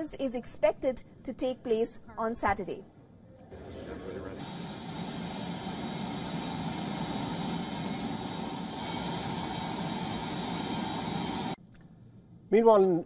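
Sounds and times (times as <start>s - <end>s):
high constant whine: 3.4s - 11.6s
jet engine rumble: 3.6s - 11.6s.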